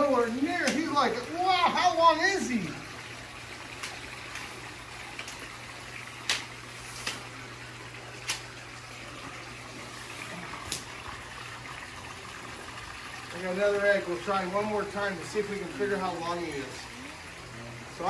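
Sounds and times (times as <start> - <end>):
running water: 0.0 - 18.0.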